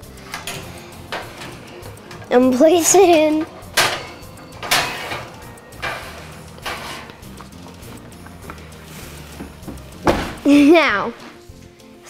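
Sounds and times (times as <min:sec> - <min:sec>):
background music: 0:00.0 - 0:12.0
metal pan clattering on oven rack: 0:00.1 - 0:07.3
oven door clunk: 0:00.3 - 0:07.1, 0:10.0 - 0:10.5.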